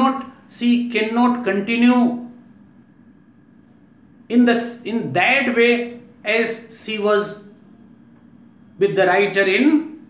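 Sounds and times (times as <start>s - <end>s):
low background hiss: 0.0s - 10.0s.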